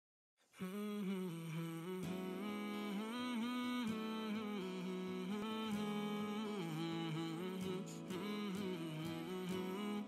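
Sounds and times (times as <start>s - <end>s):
person humming slow melody: 0.6s - 10.0s.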